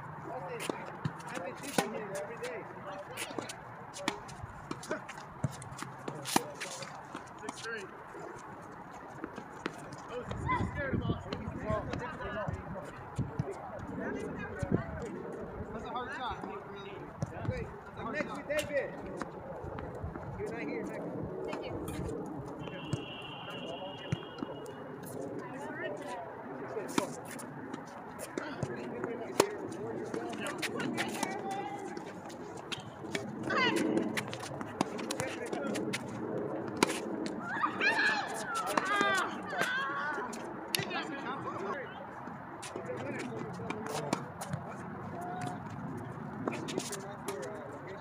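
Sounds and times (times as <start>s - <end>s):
players calling and talking: 0.0s - 48.0s
tennis balls struck and bouncing: 0.6s - 2.2s, 3.2s - 7.7s, 26.8s - 41.0s.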